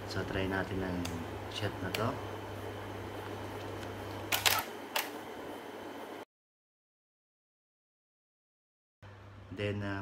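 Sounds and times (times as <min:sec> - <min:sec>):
camera shutter clicks: 0:04.3 - 0:05.2.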